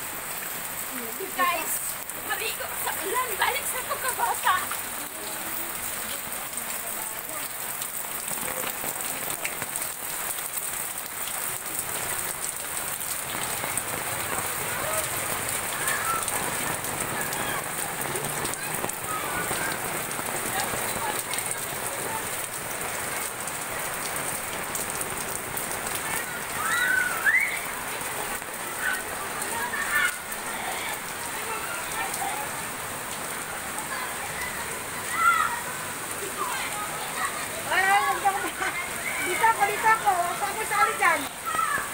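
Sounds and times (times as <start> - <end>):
steady rain on pavement: 0.0 - 41.9.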